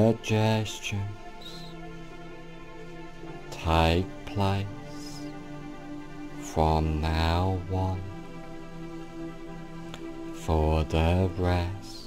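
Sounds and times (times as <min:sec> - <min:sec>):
soft meditation music: 0:00.0 - 0:12.0.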